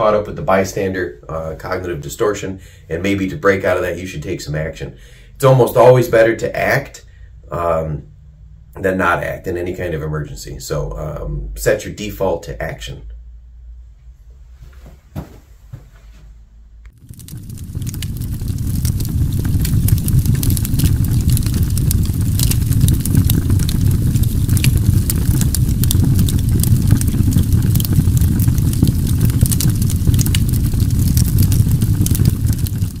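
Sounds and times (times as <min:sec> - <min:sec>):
steady low rumble: 0:16.5 - 0:33.0
sharp crackles: 0:16.9 - 0:33.0.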